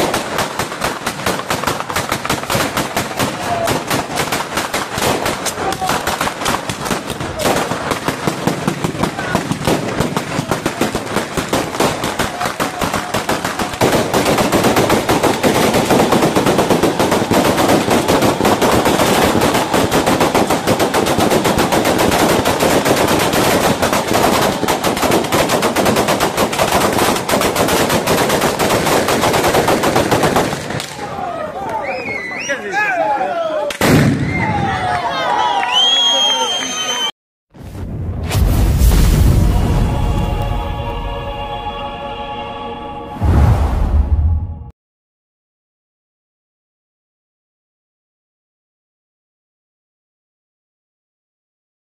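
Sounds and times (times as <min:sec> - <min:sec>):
firecrackers crackling rapidly: 0:00.0 - 0:31.3.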